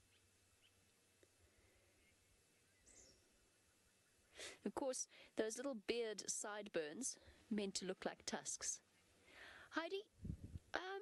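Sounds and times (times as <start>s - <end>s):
faint high bird chirp: 1.8s - 4.4s.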